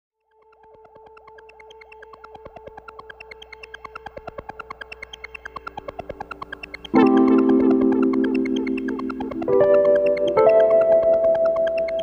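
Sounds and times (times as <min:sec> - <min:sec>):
held two-note synth tone: 0:06.1 - 0:12.0.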